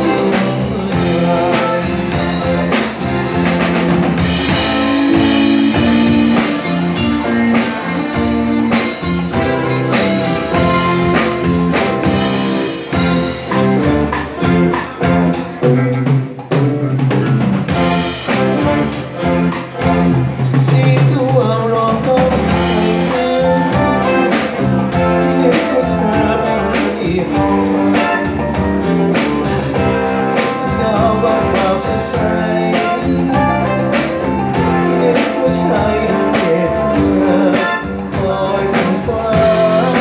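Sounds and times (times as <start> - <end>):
live rock band playing: 0.0 - 40.0.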